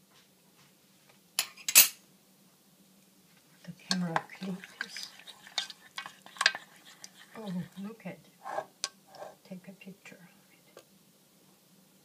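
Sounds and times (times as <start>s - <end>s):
spoon stirring yogurt: 3.7s - 9.4s.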